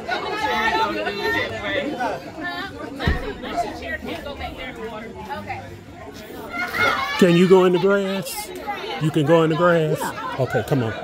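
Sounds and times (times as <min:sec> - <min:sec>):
people chattering: 0:00.0 - 0:11.0
low thump: 0:03.0 - 0:03.7.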